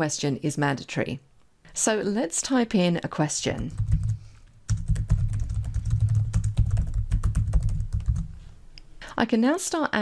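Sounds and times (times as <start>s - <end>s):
fast keyboard typing: 3.6s - 8.4s.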